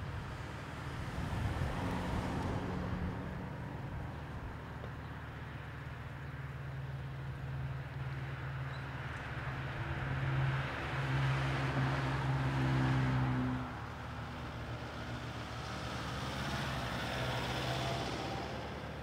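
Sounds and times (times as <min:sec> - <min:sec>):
passing vehicle engine and tyres: 0:00.0 - 0:19.0.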